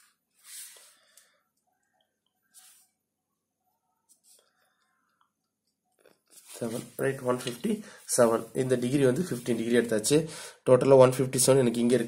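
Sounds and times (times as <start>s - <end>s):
man speaking: 6.5s - 12.0s.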